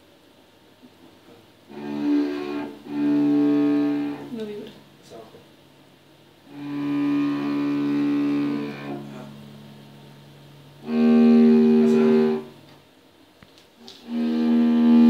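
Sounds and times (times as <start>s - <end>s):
bowed cello notes: 1.6s - 5.3s, 6.4s - 12.7s, 13.8s - 15.0s.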